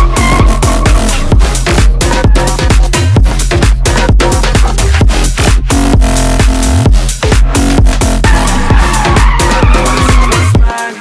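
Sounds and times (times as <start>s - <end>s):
car tyres squealing: 0.0s - 2.9s, 8.2s - 10.6s
electronic dance music: 0.0s - 11.0s.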